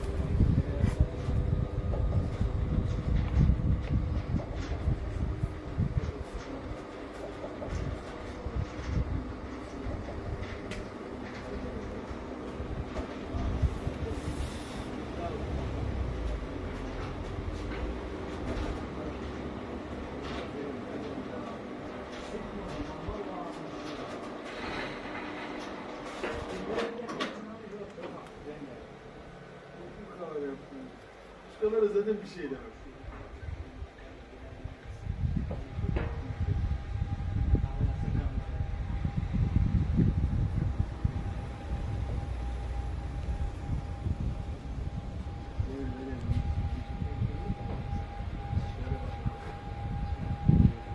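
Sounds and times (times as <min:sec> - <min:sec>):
motorized roof drive rumbling: 0:00.0 - 0:50.9
loud low rumble: 0:35.0 - 0:50.9
motor humming: 0:35.1 - 0:50.9.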